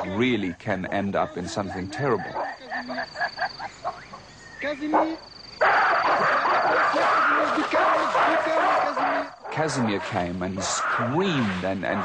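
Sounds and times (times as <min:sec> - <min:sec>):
gorilla screaming: 0:05.6 - 0:09.4.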